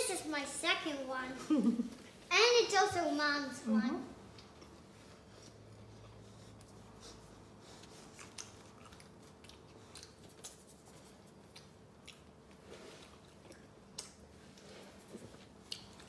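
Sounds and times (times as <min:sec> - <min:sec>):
close-up chewing with mouth clicks: 0:07.5 - 0:14.7, 0:15.5 - 0:16.0.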